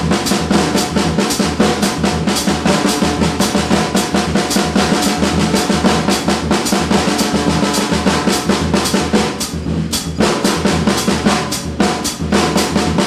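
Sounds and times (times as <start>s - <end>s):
drum kit fast stick pattern: 0.0s - 13.0s.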